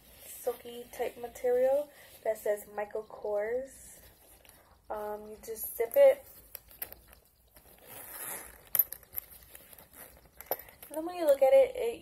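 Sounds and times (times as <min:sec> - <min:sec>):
bag rustling: 0:06.3 - 0:10.9
zipper being drawn: 0:07.8 - 0:09.0.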